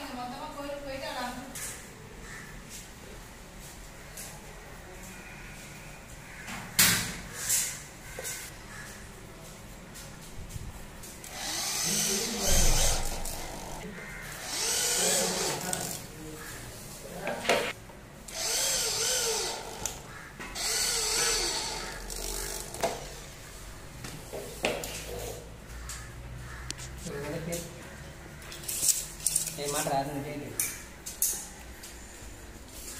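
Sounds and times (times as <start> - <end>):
electric drill boring: 11.2 - 13.8, 14.4 - 16.0, 18.3 - 23.0.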